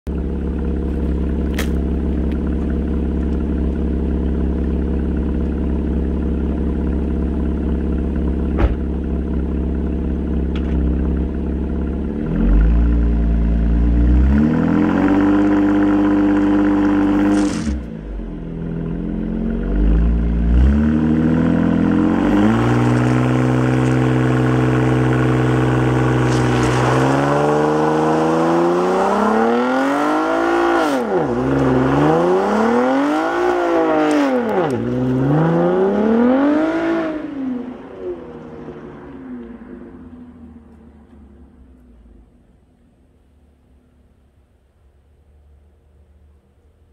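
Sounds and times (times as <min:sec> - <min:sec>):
car engine revving: 0:00.2 - 0:39.8.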